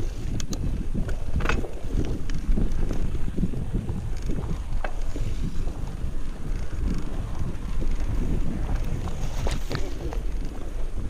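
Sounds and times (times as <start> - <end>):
bike rattles and clicks: 0.0 - 11.0
bike tyres rolling on dirt: 0.0 - 11.0
wind buffeting microphone: 0.0 - 11.0.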